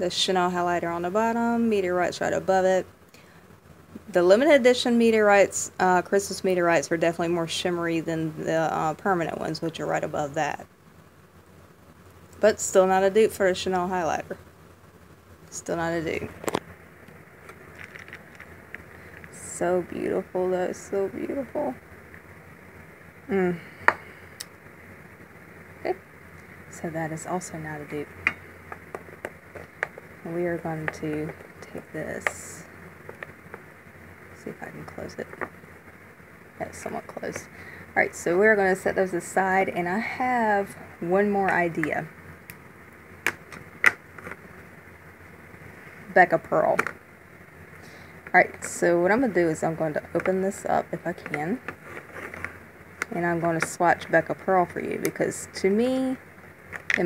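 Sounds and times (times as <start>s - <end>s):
handling rustles: 17.4s - 19.4s, 50.1s - 52.7s.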